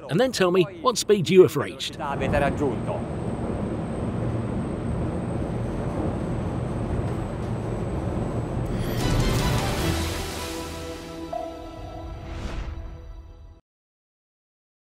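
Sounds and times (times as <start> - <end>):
boat engines rumbling: 0.1 - 10.1
rising whoosh: 8.6 - 13.4
water rushing: 8.7 - 11.4
short music sting: 8.7 - 13.6.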